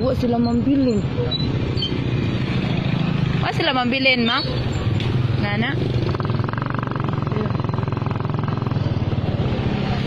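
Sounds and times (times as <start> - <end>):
road and wind noise: 0.0 - 10.0
vehicle engine rumbling: 0.0 - 10.0.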